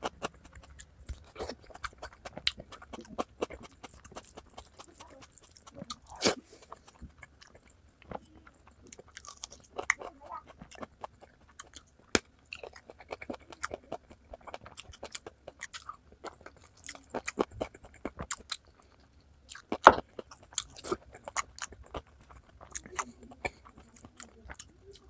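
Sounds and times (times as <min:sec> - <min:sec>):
close chewing and biting: 0:00.0 - 0:25.0.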